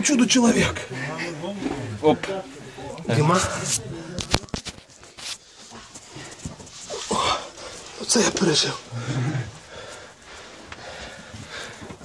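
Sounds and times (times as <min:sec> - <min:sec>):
man breathing heavily: 0:08.8 - 0:12.0.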